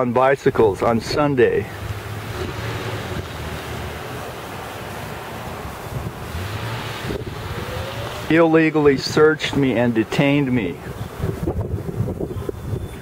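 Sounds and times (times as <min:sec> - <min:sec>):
wind rushing over microphone: 0:00.5 - 0:13.0.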